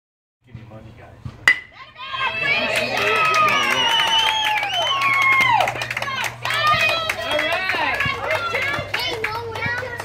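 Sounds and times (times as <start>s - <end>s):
bat cracking against ball: 1.3s - 1.8s.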